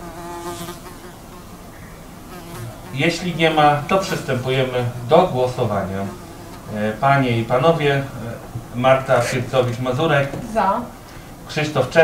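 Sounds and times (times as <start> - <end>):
buzzing hum: 0.0 - 12.0.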